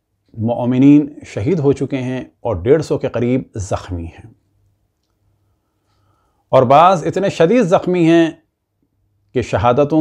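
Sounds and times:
man speaking: 0.3 - 4.4, 6.5 - 8.5, 9.3 - 10.0.

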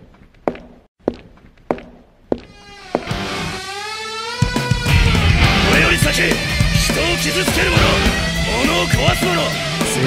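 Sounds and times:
firm footsteps: 0.0 - 3.8.

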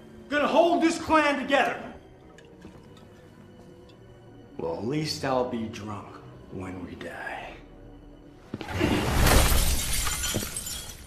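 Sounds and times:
glass smashing: 9.0 - 11.0.

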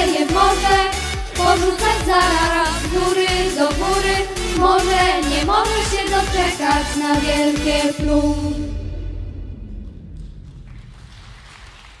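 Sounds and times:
scattered audience applause: 10.4 - 12.0.

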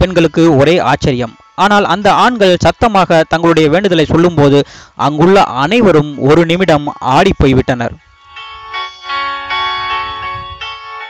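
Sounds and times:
bell-like chimes music: 0.0 - 11.0.

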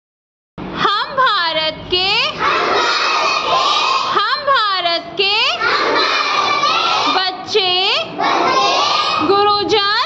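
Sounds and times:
children shouting in unison: 2.3 - 4.2, 5.6 - 7.2, 8.1 - 9.3.

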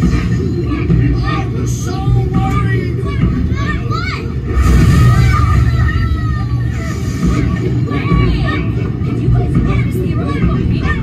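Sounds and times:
steady low rumble: 0.0 - 11.0
high-pitched child-like voices: 2.8 - 4.4, 5.1 - 11.0.

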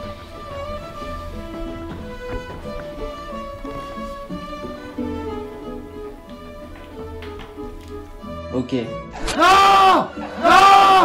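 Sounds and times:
bowed string notes: 0.0 - 11.0.

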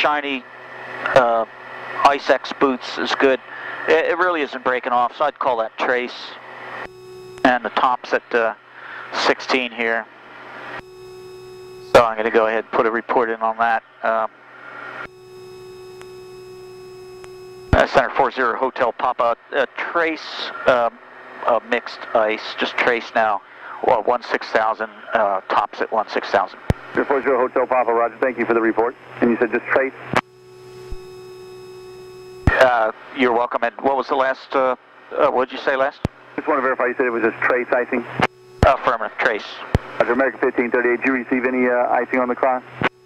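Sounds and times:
steady electronic radio tone: 1.0 - 20.9, 26.2 - 43.0
steady electronic tone: 6.5 - 9.4, 10.3 - 12.6, 13.8 - 18.2, 30.1 - 32.8
person speaking: 11.9 - 14.3, 36.4 - 42.4.

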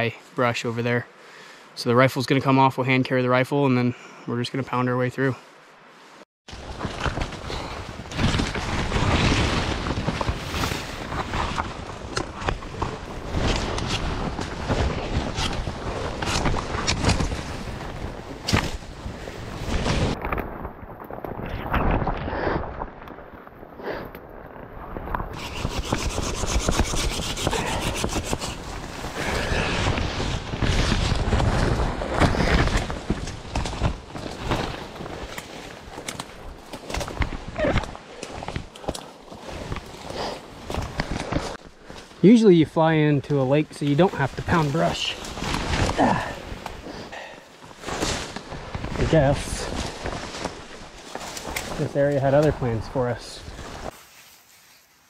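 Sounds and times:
leaves rustling: 5.4 - 55.0
branches scraping against clothing: 6.5 - 23.8, 25.1 - 55.0
twigs cracking: 6.5 - 42.2, 43.7 - 52.6.

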